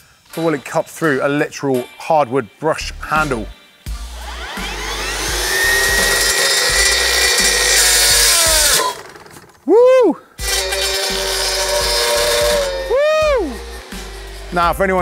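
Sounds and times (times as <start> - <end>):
brush cutter motor whine: 4.0 - 9.6, 10.4 - 14.6
brush cutter blade cutting wood: 4.1 - 9.6, 10.4 - 14.7.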